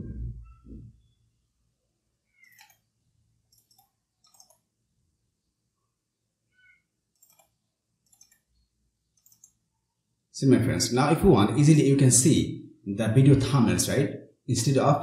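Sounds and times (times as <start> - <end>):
computer mouse double-clicks: 2.4 - 2.9, 3.5 - 4.6, 7.1 - 8.5, 9.2 - 9.6.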